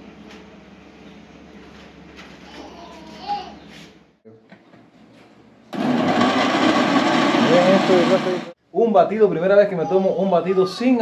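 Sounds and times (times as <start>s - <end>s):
blender motor running: 5.7s - 8.6s.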